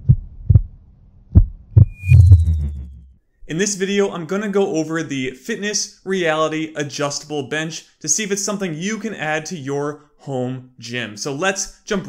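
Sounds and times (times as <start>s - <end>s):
deep bass thumps: 0.0s - 3.1s
low hum: 1.4s - 3.2s.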